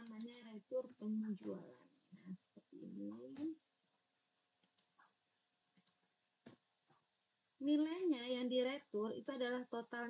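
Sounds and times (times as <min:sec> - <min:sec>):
computer keyboard keystrokes: 0:04.6 - 0:05.1, 0:05.7 - 0:07.0.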